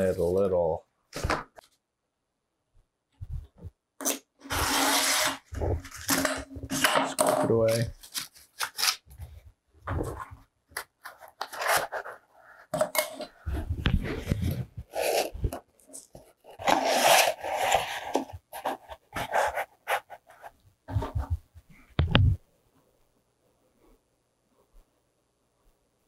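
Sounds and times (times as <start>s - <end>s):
cardboard and paper rustling: 4.6s - 21.4s.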